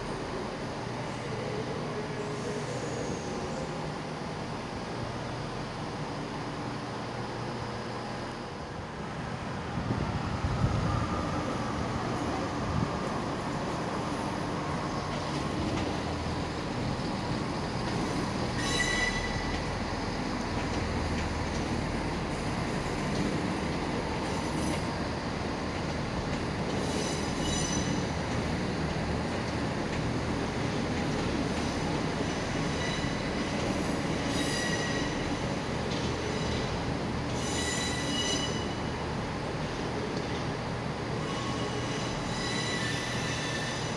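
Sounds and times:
train engine and rail rumble: 0:00.0 - 0:43.9
high-pitched wheel squeals: 0:18.6 - 0:19.6, 0:26.8 - 0:28.0, 0:32.6 - 0:33.3, 0:34.3 - 0:35.2, 0:37.3 - 0:38.8, 0:41.2 - 0:43.9.

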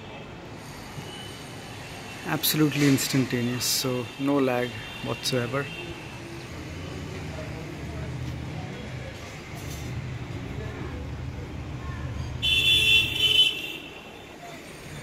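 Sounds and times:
road traffic rumble: 0:00.0 - 0:15.0
vehicle horn: 0:12.4 - 0:14.2.

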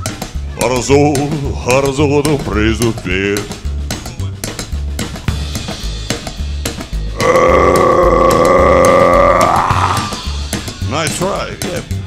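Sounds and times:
singer holding long note: 0:07.2 - 0:10.3.

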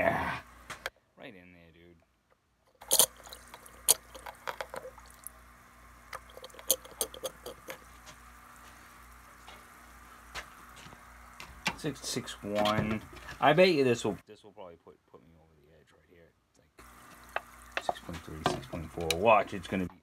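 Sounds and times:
steady low hum: 0:02.7 - 0:14.4
liquid sloshing in plastic jug: 0:02.8 - 0:05.3.

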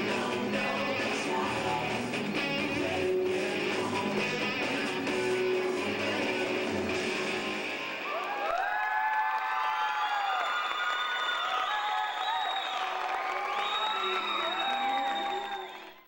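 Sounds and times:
music: 0:00.0 - 0:08.7
audience whoops and screams: 0:07.9 - 0:16.0
applause: 0:08.1 - 0:16.0.

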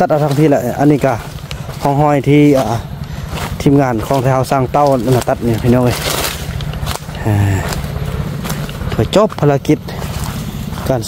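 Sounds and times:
man speaking: 0:00.0 - 0:06.2, 0:07.1 - 0:07.8, 0:08.8 - 0:10.2, 0:10.8 - 0:11.0
steady low rumble: 0:00.0 - 0:11.0.

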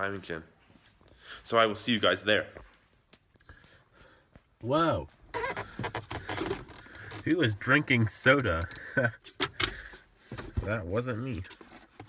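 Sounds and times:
foam cup rustling and clattering: 0:05.6 - 0:08.8, 0:09.8 - 0:12.0.

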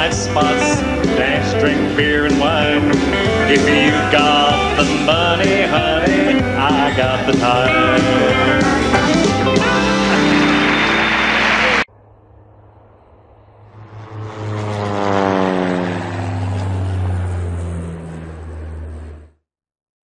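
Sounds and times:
country band music: 0:00.0 - 0:11.9
propeller airplane passing: 0:00.0 - 0:19.4.

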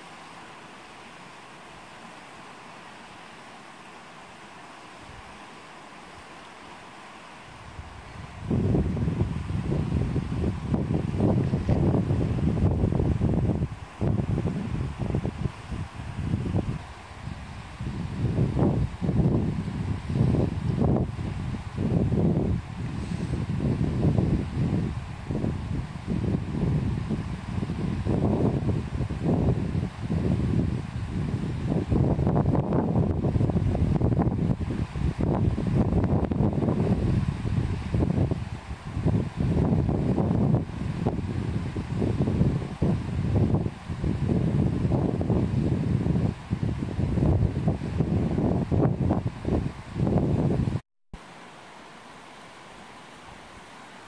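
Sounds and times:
steady hiss: 0:00.0 - 0:54.0
wind buffeting microphone: 0:07.5 - 0:50.8.

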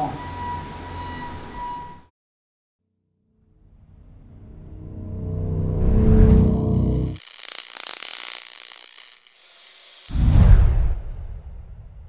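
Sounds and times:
rapid high clicking: 0:06.4 - 0:10.2.

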